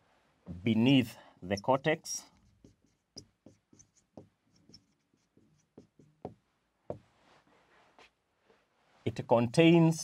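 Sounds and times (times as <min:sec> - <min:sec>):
marker squeaking on a whiteboard: 0:01.4 - 0:07.0.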